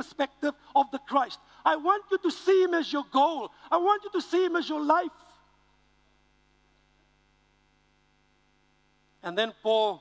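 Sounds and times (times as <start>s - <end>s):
man speaking: 0.0s - 5.4s, 9.2s - 10.0s
faint electrical mains hum: 0.0s - 10.0s.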